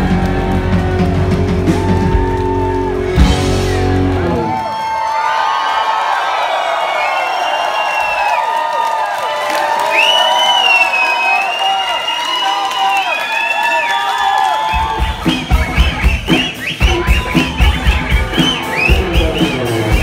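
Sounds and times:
rock band playing: 0:00.0 - 0:05.0, 0:14.6 - 0:20.0
crowd cheering and whistling: 0:00.0 - 0:20.0.

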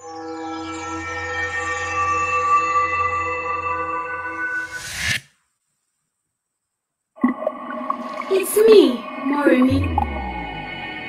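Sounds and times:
low rumble: 0:09.0 - 0:11.0
sustained ambient chord: 0:09.0 - 0:11.0.

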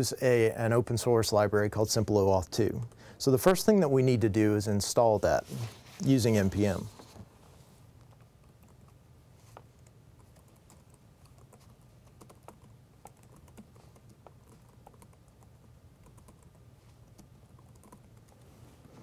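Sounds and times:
low steady hum: 0:00.0 - 0:19.0
keyboard typing: 0:09.8 - 0:18.5.

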